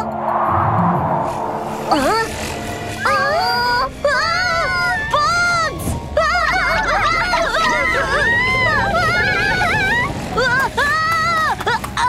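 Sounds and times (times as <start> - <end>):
cartoon insect swarm buzzing: 1.6 - 11.5.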